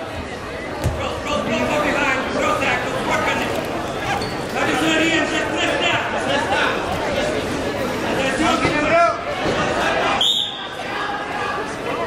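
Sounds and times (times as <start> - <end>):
voices and chatter: 0.0 - 12.0
referee's whistle blast: 10.2 - 10.6.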